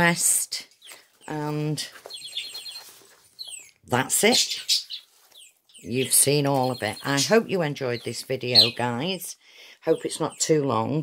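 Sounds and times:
small bird chirping: 0.0s - 11.0s.

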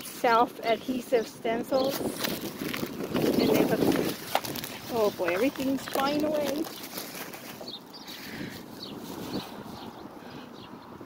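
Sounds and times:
wind gusting over microphone: 0.0s - 11.0s.

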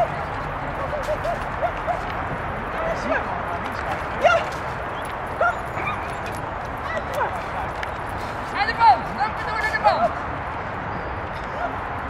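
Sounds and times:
dog yipping: 5.4s - 6.4s.

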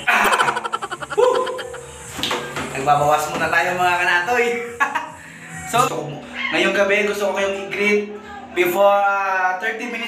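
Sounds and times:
man straining and laughing: 0.0s - 2.0s.

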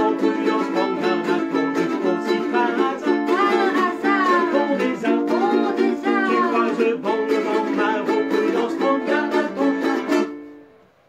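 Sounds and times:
person singing wordless melody: 0.0s - 10.4s
ukuleles strumming: 0.0s - 10.8s.

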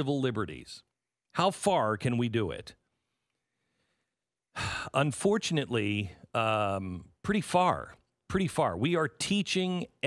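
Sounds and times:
man talking: 0.0s - 2.8s, 4.6s - 10.0s
man sighing: 4.5s - 5.0s.

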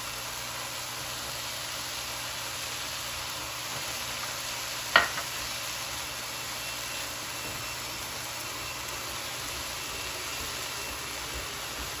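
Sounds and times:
meat and onions sizzling: 0.0s - 12.0s.

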